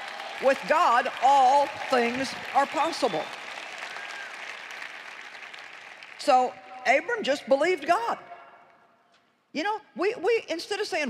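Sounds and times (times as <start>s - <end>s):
large audience applauding: 0.0s - 6.3s.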